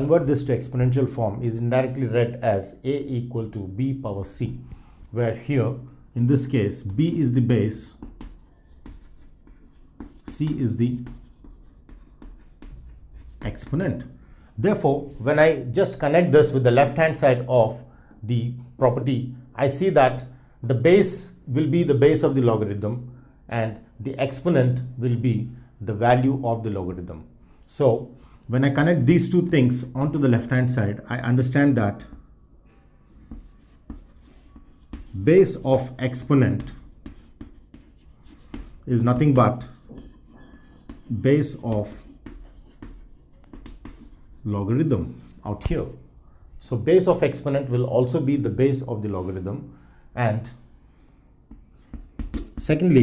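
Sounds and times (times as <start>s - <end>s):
chalk scratching on chalkboard: 6.4s - 14.1s, 32.0s - 46.0s, 50.5s - 53.0s.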